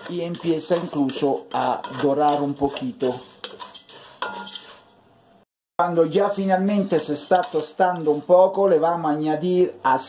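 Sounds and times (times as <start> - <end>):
wooden spatula scraping metal pot: 0.0 - 5.0, 6.0 - 8.9.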